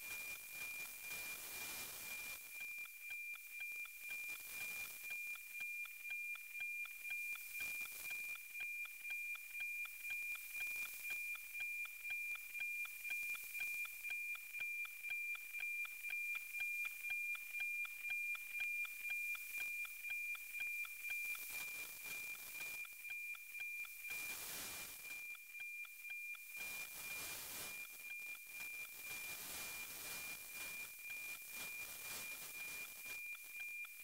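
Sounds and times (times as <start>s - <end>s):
high tone with tick-tock beat: 0.0s - 34.0s.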